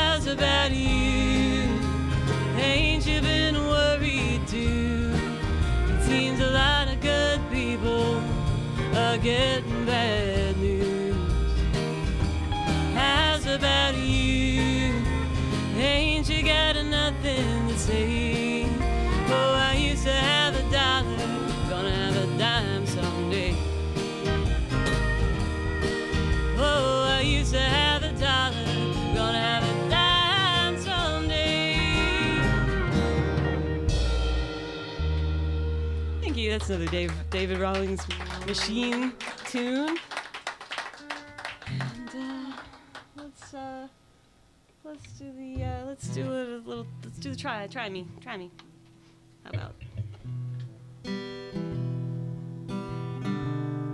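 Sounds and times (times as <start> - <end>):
electric bass: 0.0 - 38.9
drum kit: 0.0 - 39.2
acoustic guitar: 0.0 - 44.0, 44.8 - 53.9.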